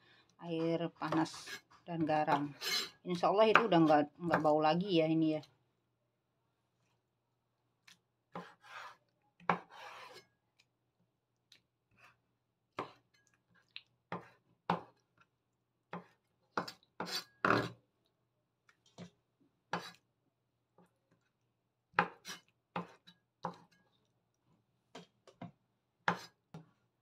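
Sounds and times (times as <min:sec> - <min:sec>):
knife chopping on wooden board: 0:08.4 - 0:09.9.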